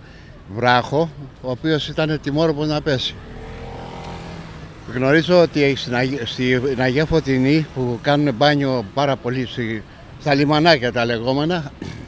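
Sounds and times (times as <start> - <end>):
street noise: 0.0 - 12.0
vehicle engine humming: 0.0 - 12.0.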